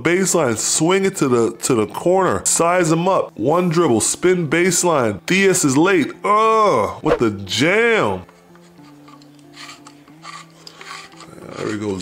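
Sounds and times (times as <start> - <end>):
soft low sustained music: 7.2 - 12.0.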